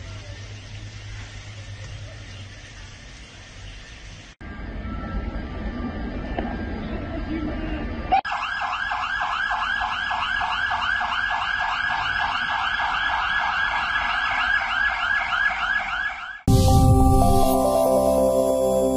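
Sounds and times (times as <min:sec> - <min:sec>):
electronic siren yelping: 0:08.1 - 0:16.5
short music sting: 0:16.5 - 0:18.9.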